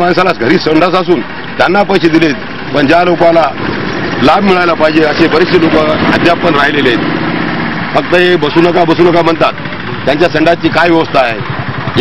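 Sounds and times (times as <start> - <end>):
man speaking: 4.2 - 7.0, 7.9 - 11.4.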